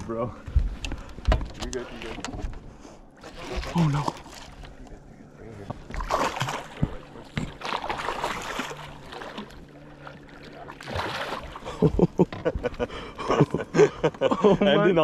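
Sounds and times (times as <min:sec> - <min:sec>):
fish splashing at the surface: 0:05.9 - 0:11.8.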